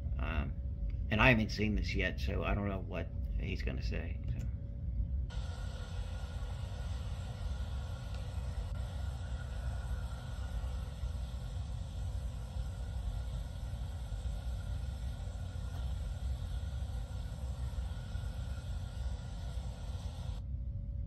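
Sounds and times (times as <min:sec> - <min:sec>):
outdoor rumble and hiss: 0:00.0 - 0:21.0.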